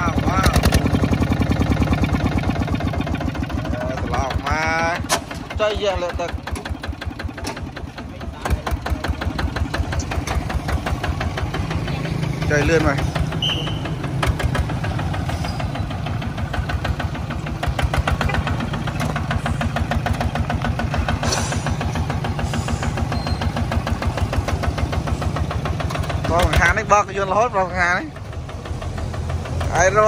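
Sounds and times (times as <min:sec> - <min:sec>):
diesel tractor engine knocking: 0:00.0 - 0:30.0.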